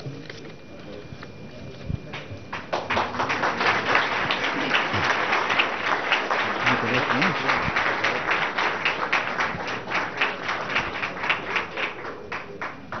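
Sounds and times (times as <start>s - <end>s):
audience applause: 2.1s - 13.0s.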